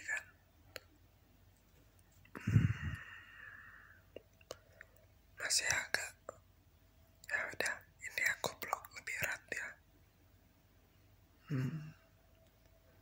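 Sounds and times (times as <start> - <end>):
man whispering: 0.0 - 0.4, 5.4 - 6.3, 7.2 - 9.8.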